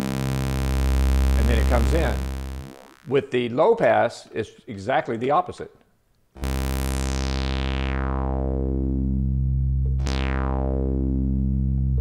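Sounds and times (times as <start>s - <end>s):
synthesizer filter sweep: 0.0s - 3.2s, 6.4s - 12.0s.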